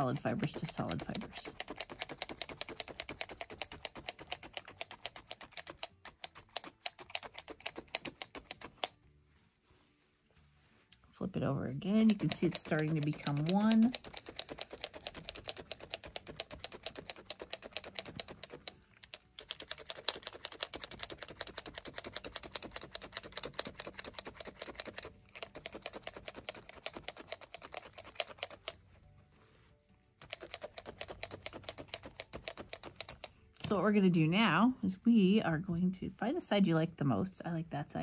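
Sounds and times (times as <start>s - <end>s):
felting needles jabbing wool: 0.0s - 34.4s.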